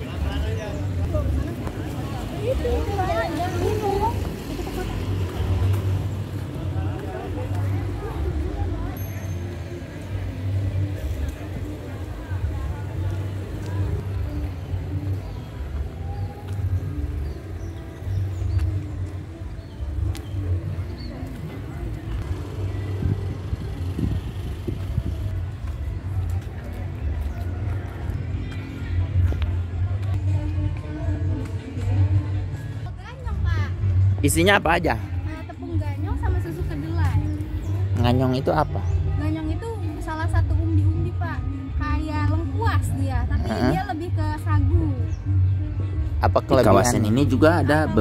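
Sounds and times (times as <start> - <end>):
passers-by talking: 0.0 - 48.0.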